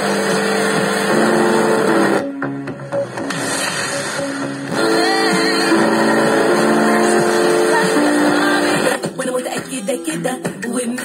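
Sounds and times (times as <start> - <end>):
music from radio speaker: 0.0 - 11.0.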